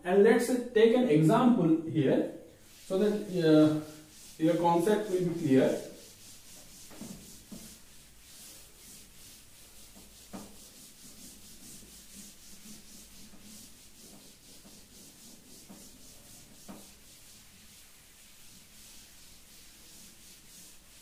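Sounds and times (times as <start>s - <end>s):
cloth wiping a chalkboard: 2.0s - 21.0s.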